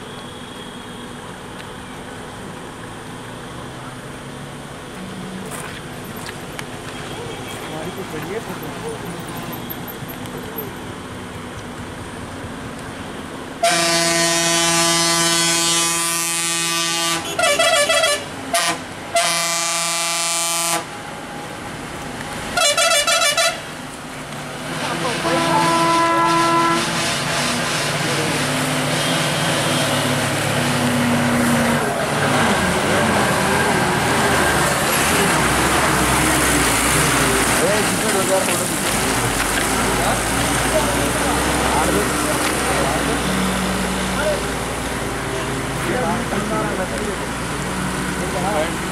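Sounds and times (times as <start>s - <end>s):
lorry engine and tyres passing: 2.3s - 13.5s, 23.6s - 48.9s
lorry horn blasts and toots: 13.6s - 20.9s, 22.6s - 23.7s, 25.1s - 27.5s.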